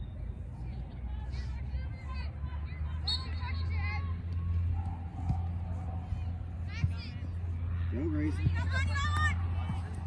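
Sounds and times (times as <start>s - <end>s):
distant shouts and chatter: 0.0s - 10.0s.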